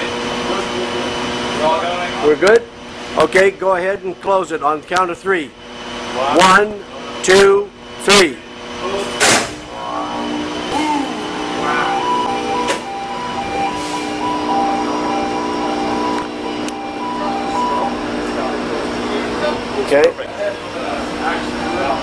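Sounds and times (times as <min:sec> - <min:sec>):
electrical hum of machinery: 0:00.0 - 0:22.0
two-pitch electronic alarm tone: 0:09.7 - 0:19.9, 0:20.6 - 0:22.0.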